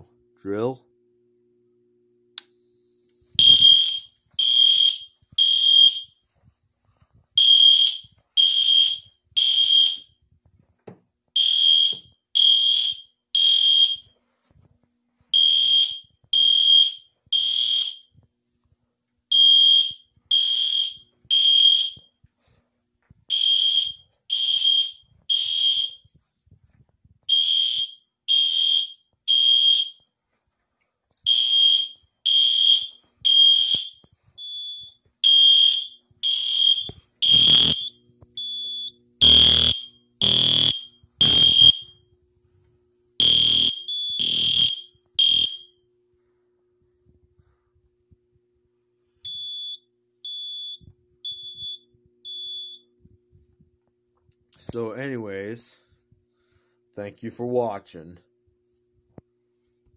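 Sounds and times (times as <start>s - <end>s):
fire alarm horn blasts: 3.3s - 6.3s, 7.4s - 10.3s, 11.4s - 14.2s, 15.3s - 18.2s, 19.3s - 22.2s, 23.3s - 26.2s, 27.3s - 30.1s, 31.2s - 42.1s, 43.2s - 45.8s, 49.2s - 52.9s.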